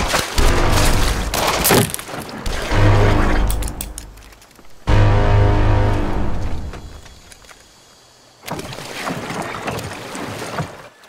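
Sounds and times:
oars splashing in water: 0.0s - 4.8s, 8.4s - 11.0s.

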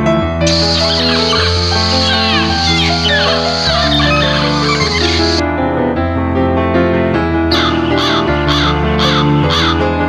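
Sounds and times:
background music with sustained notes: 0.0s - 10.0s
bird calling: 0.5s - 5.4s, 7.5s - 9.8s.

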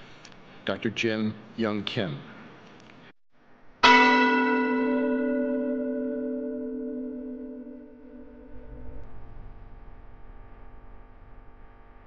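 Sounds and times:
bell-like chime ringing: 3.8s - 8.6s.

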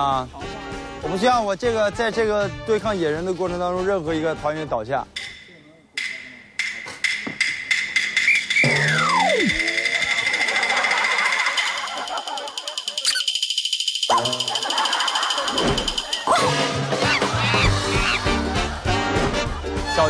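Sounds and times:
background music: 0.0s - 20.0s
high rapidly pulsing tone: 7.4s - 16.2s
descending slide whistle: 8.2s - 9.7s.

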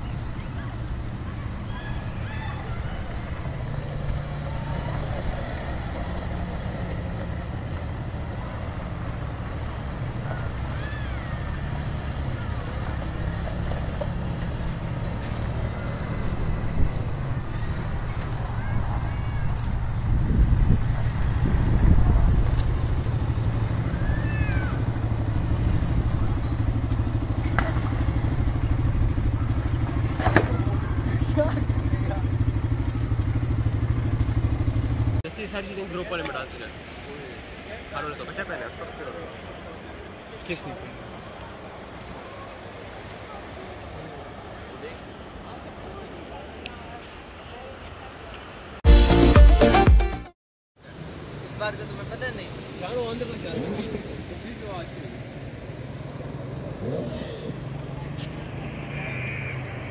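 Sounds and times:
quad bike engines droning: 0.0s - 36.4s, 50.9s - 59.9s
faint voices: 0.0s - 48.8s, 50.8s - 59.9s.

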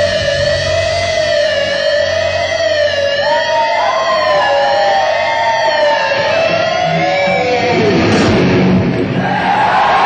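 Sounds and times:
distorted electric guitars: 0.0s - 9.8s.

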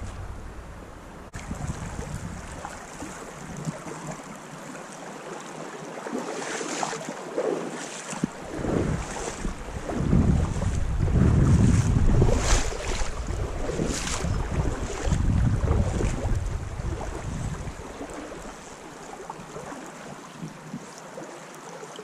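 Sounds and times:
wind buffeting microphone: 0.0s - 4.3s, 8.2s - 18.6s.

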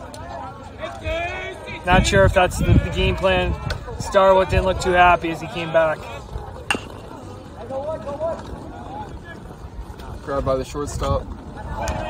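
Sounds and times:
metal bat hitting ball: 6.7s - 7.1s.

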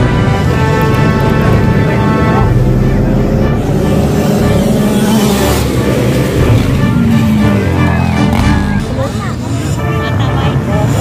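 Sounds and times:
crowd voices: 0.0s - 11.0s
dirt bike engines: 0.0s - 11.0s.

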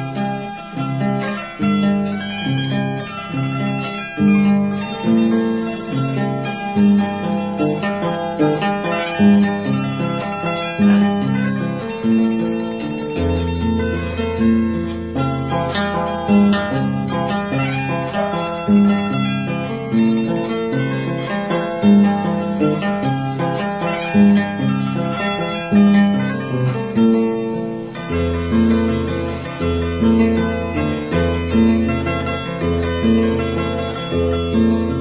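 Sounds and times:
solo harp melody: 0.0s - 35.0s.

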